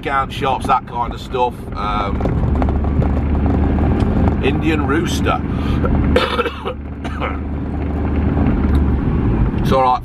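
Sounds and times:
van engine and tyre rumble: 0.0s - 10.0s.

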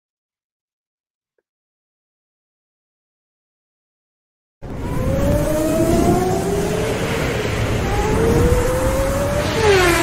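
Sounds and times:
racing car engine revving: 4.6s - 10.0s.

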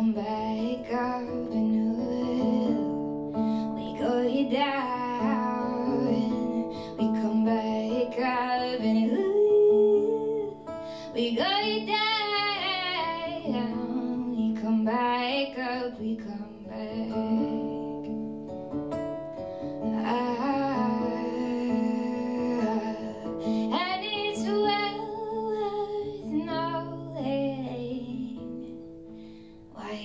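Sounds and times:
woman singing a ballad: 0.0s - 18.5s, 19.5s - 30.0s
acoustic guitar: 0.0s - 30.0s.

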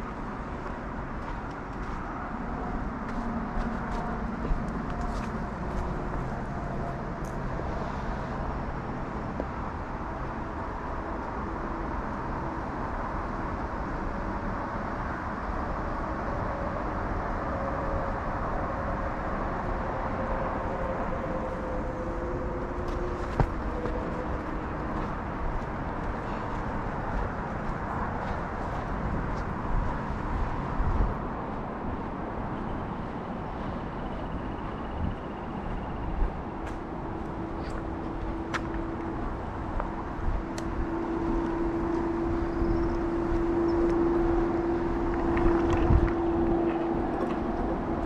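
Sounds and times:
distant road traffic: 0.0s - 48.0s
passing vehicles: 0.0s - 48.0s.

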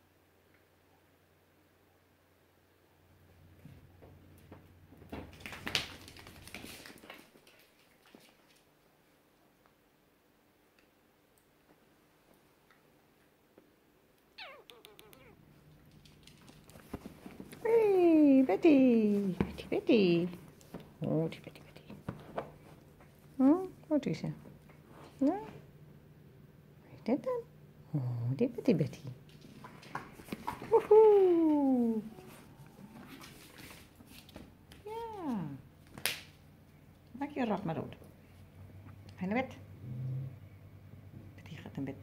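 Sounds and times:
puppy paws on wooden floor: 3.6s - 8.7s, 14.8s - 25.6s, 29.0s - 36.1s
puppy whining: 14.4s - 15.4s.

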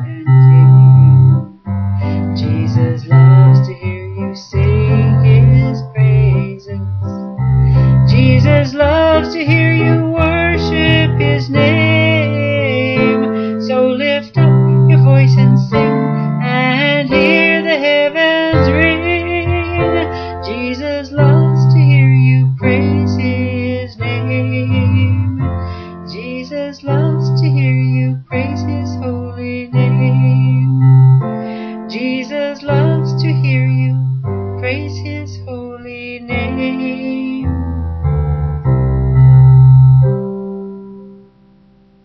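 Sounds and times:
bass line: 0.0s - 31.4s, 32.7s - 41.2s
electronic keyboard piano chords: 0.0s - 42.0s.

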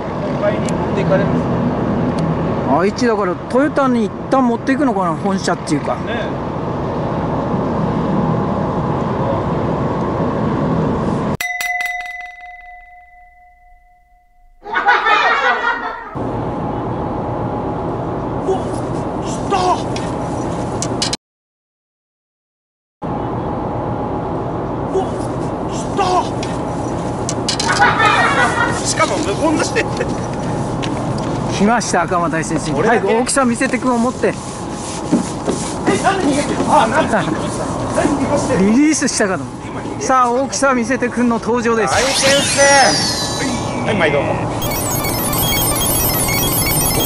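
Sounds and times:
bell-like chime: 11.4s - 14.7s, 44.6s - 47.0s
outdoor background noise: 14.6s - 21.2s, 23.0s - 47.0s.

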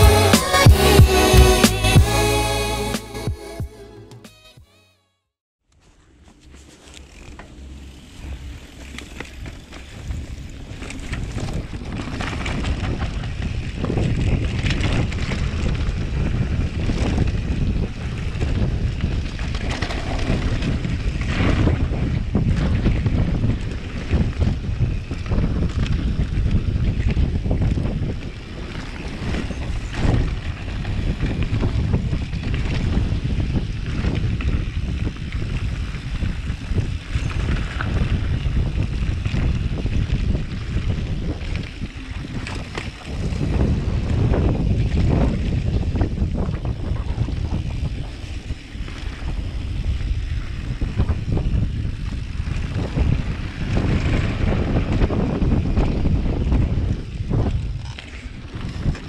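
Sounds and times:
bike rattling over rocks: 6.4s - 59.0s
wind buffeting microphone: 8.0s - 59.0s.

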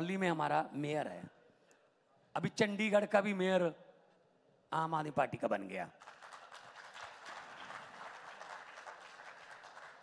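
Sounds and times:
audience applauding: 6.0s - 10.0s.

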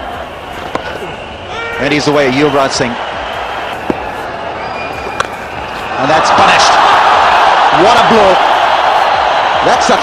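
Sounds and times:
stadium crowd noise: 0.0s - 10.0s
cricket bat striking ball: 0.6s - 1.1s, 3.8s - 4.2s, 5.0s - 5.7s.

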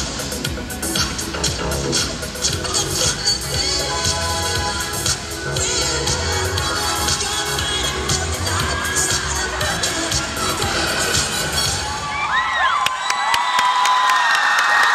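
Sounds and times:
hip hop dance music: 0.0s - 12.8s
crowd cheering: 11.4s - 14.9s.

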